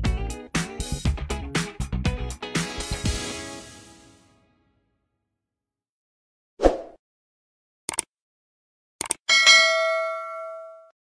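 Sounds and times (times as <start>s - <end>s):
notification bell ding: 9.3s - 11.0s.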